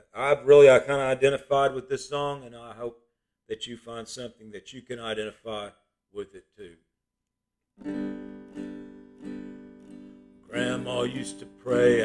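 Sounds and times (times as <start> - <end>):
acoustic guitar strumming: 7.8 - 12.0.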